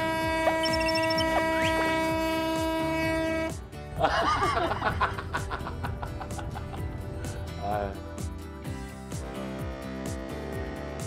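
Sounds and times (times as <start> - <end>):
boat horn long blast: 0.0 - 3.8, 9.2 - 11.0
background music: 0.0 - 11.0.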